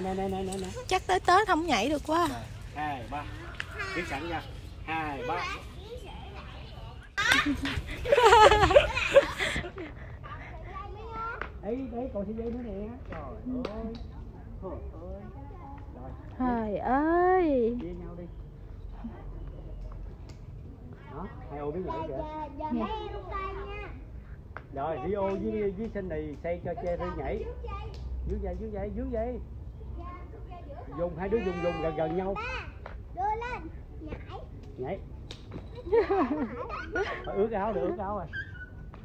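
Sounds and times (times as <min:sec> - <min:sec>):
young children chattering: 0:02.4 - 0:11.6, 0:20.8 - 0:24.2, 0:29.7 - 0:34.6.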